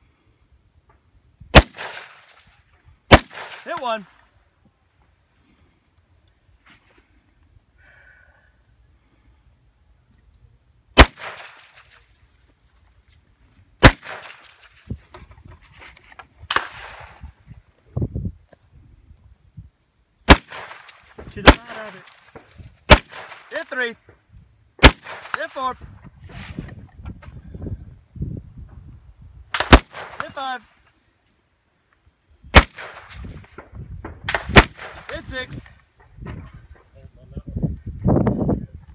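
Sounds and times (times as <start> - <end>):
weaker gunshot crack: 1.5 - 2.4, 3.1 - 3.8, 11.0 - 12.0, 20.3 - 23.5, 24.8 - 25.4, 29.5 - 30.3, 34.2 - 35.2
rifle shots with echo: 1.5 - 2.5, 3.1 - 4.1, 11.0 - 12.1, 13.8 - 14.8, 16.5 - 17.3, 20.2 - 23.8, 24.8 - 25.7, 29.5 - 30.6, 32.5 - 35.5.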